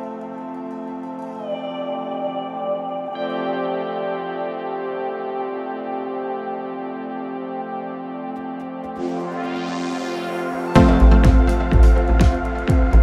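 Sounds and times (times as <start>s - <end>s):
ambient music held chords: 0.0s - 13.0s.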